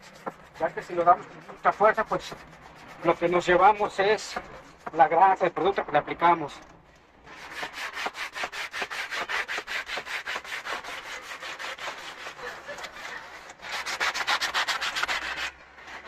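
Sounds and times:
cloth rubbing polish into leather: 0.0 - 5.0.

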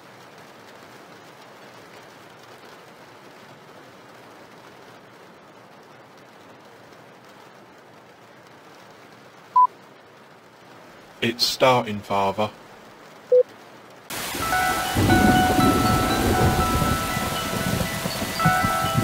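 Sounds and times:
faint steady hiss: 0.0 - 19.0.

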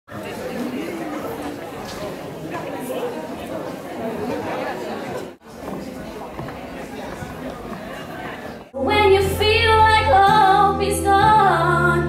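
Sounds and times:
audience chatter in hall: 0.1 - 12.0.

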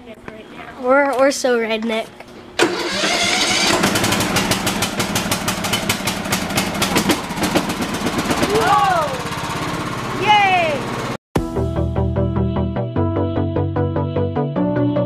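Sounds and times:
lawn mower engine running: 2.6 - 11.2
person calling out: 8.4 - 9.3, 10.2 - 10.9.

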